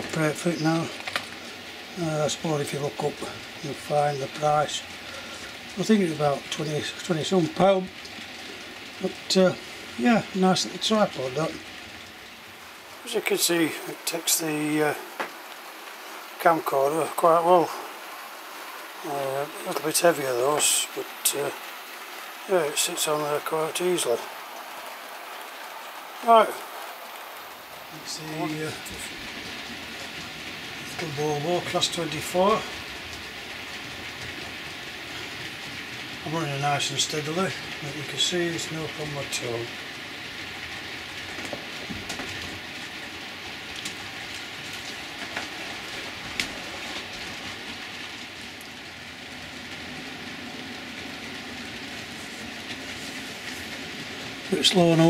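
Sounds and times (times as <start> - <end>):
man speaking: 0.0 - 1.0, 2.0 - 4.8, 5.8 - 7.9, 9.0 - 11.6, 13.0 - 15.1, 16.4 - 17.9, 19.0 - 21.6, 22.4 - 24.3, 26.2 - 26.7, 27.9 - 29.2, 30.9 - 32.8, 36.2 - 39.7, 54.5 - 55.0
model train running on track: 28.0 - 41.9, 50.9 - 55.0.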